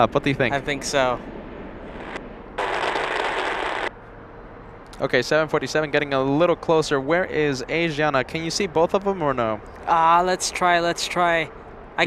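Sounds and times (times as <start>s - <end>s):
crackling static noise: 1.8s - 4.0s.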